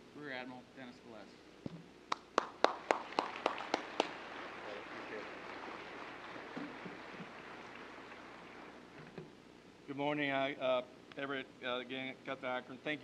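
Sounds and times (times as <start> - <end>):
loud claps close by: 2.1 - 8.8
crowd applauding: 2.1 - 8.9.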